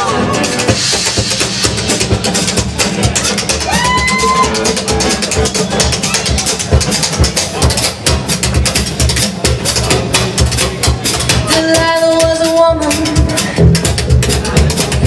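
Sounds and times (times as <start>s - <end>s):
box drum and cymbals rhythm: 0.0s - 15.0s
upright bass: 0.0s - 15.0s.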